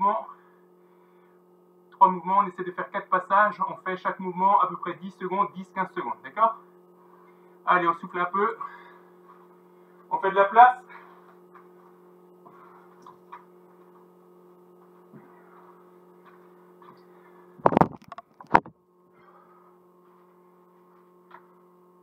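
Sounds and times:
electrical hum: 0:00.0 - 0:22.0
recorder handling rustle: 0:17.6 - 0:18.7.

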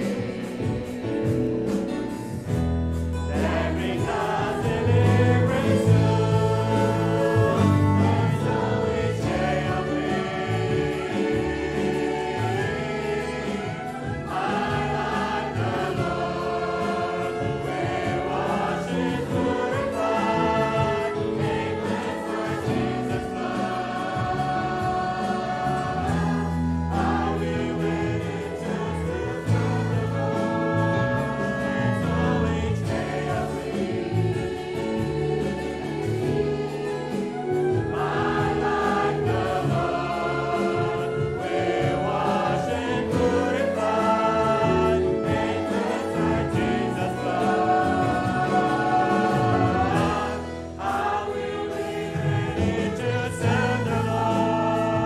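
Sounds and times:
choir singing a hymn: 0:00.0 - 0:55.0
instrumental accompaniment: 0:00.0 - 0:55.0.

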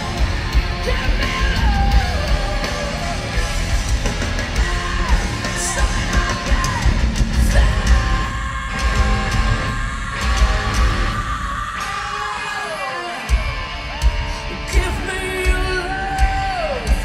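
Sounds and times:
heavy drums and bass: 0:00.0 - 0:12.6, 0:13.2 - 0:17.0.

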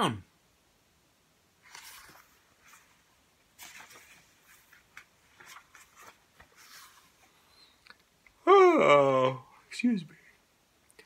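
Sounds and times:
book pages rustling: 0:01.6 - 0:08.1.

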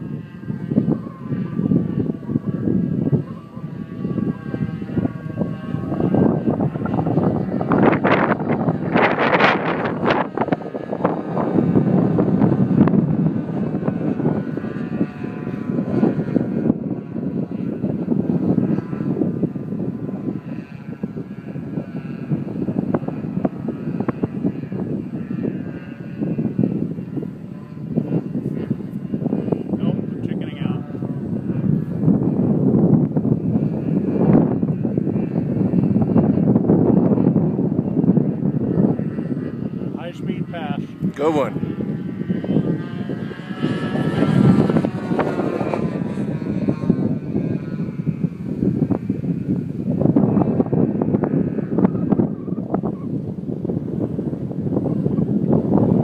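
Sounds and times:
model plane engines whining: 0:00.0 - 0:56.0
wind buffeting on microphone: 0:00.0 - 0:56.0.

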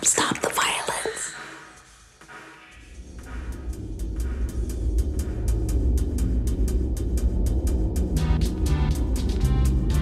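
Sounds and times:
whispered voices: 0:00.0 - 0:01.4.

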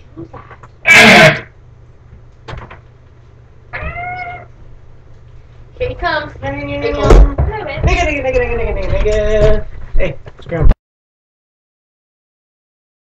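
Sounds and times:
person shrieking: 0:00.9 - 0:01.5.

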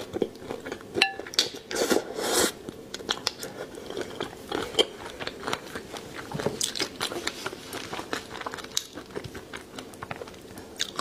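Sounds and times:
person chewing food: 0:00.0 - 0:11.0.

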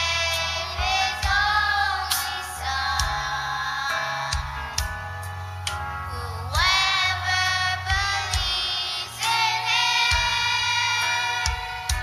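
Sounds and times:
children's choir singing: 0:00.0 - 0:04.7, 0:06.1 - 0:12.0.

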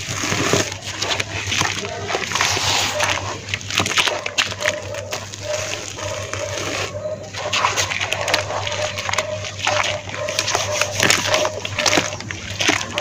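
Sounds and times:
wet dirt slurry squelching: 0:00.0 - 0:13.0.

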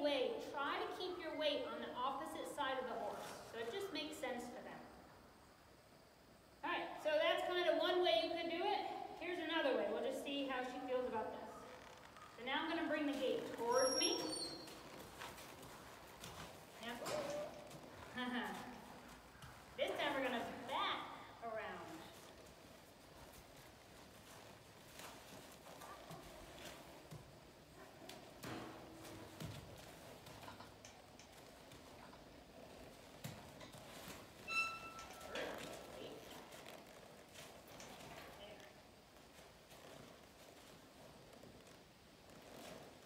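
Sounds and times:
horse hoofbeats on dirt: 0:12.0 - 0:20.8, 0:21.6 - 0:43.0.

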